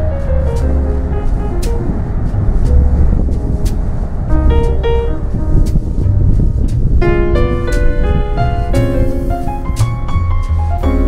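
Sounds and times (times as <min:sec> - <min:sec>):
heavy bass: 0:00.0 - 0:11.0
held keyboard notes: 0:00.0 - 0:11.0.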